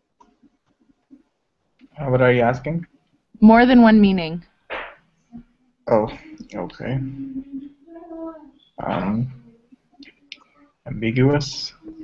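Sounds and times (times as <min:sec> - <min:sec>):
person's drawn-out wordless voice: 0:05.9 - 0:09.5.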